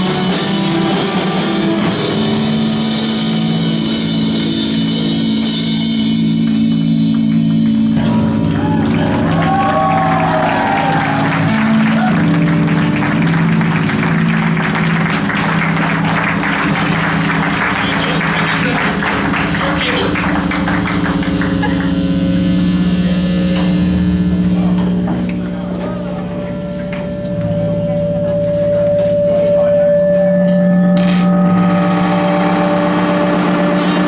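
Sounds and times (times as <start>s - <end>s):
punk rock band playing live: 0.0s - 34.0s
wavering high guitar tones: 0.0s - 34.0s.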